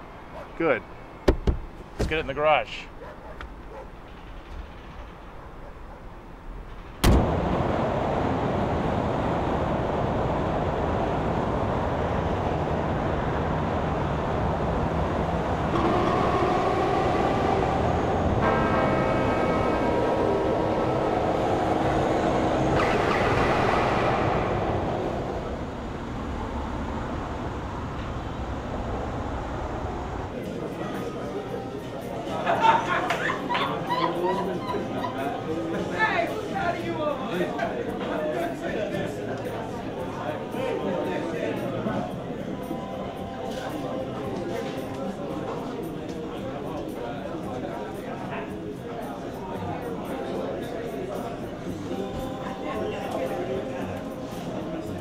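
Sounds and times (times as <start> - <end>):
highway traffic noise: 0.0 - 32.2
long horn-like tone: 15.5 - 26.1.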